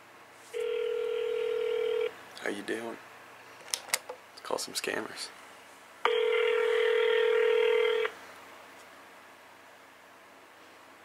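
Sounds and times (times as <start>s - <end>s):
telephone dial tone: 0.6s - 2.1s, 6.1s - 8.1s.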